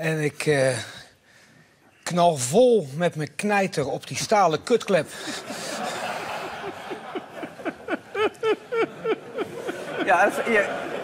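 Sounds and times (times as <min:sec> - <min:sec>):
audience laughing: 0:05.1 - 0:11.0.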